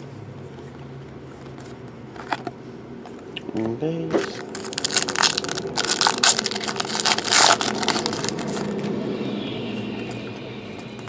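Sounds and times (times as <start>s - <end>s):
foil wrapper tearing and crinkling: 4.2s - 8.7s.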